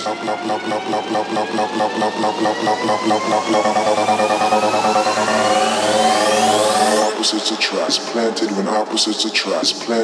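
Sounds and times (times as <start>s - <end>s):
psytrance music: 0.0s - 10.0s.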